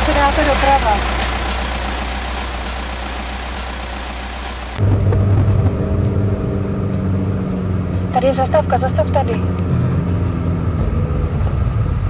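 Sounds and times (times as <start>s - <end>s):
car interior engine hum: 0.0s - 12.0s
road and wind noise: 0.0s - 12.0s.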